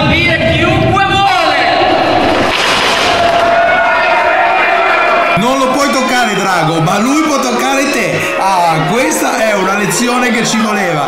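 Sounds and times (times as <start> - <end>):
crowd shouting and cheering: 0.0 - 11.0.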